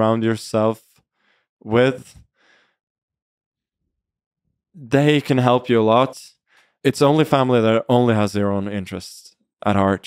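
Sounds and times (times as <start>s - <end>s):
man speaking: 0.0s - 0.9s, 1.7s - 2.2s, 4.8s - 6.3s, 6.9s - 10.0s
short soft breath: 2.4s - 2.8s.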